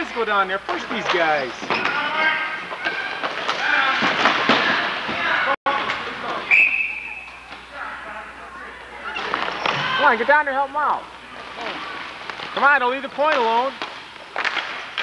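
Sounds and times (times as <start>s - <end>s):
players' voices and shouts: 0.0s - 13.8s.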